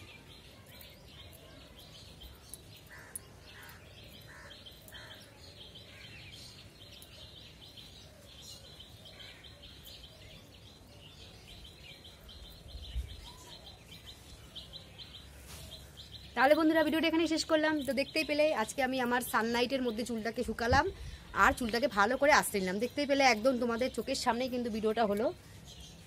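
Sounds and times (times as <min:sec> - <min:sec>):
birds chirping: 0:00.0 - 0:26.0.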